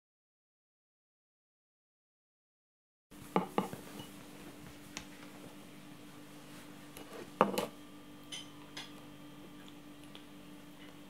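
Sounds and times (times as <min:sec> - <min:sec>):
low hum of room tone: 0:03.1 - 0:11.0
tableware clinking: 0:08.3 - 0:08.9.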